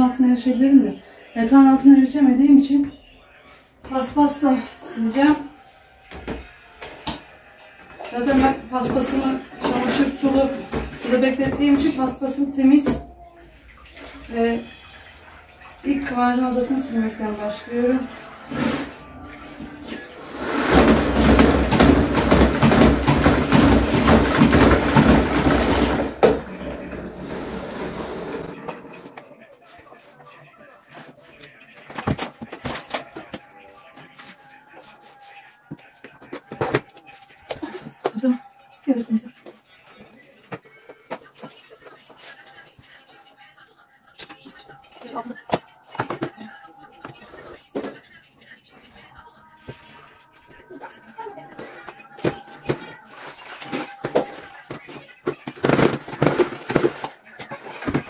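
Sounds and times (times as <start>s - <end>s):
spin mop wringer whirring: 14.0s - 29.2s
mop knocking on wooden floor: 20.4s - 27.1s.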